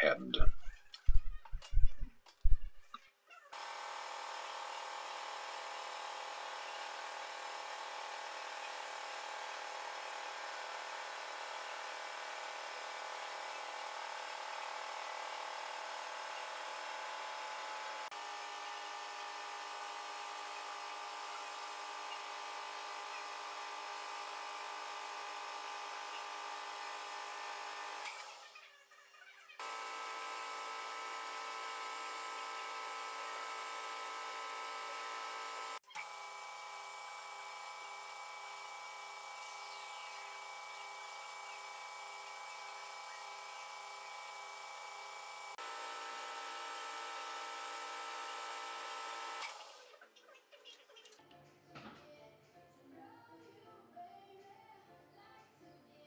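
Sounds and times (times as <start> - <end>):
lathe motor whine: 3.6 - 28.4, 29.6 - 49.8.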